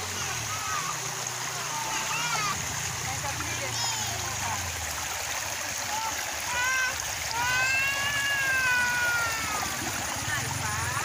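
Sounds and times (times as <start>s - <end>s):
children's high voices: 0.0s - 2.7s, 3.6s - 4.4s, 5.9s - 10.0s
stream running over rocks: 0.0s - 11.0s.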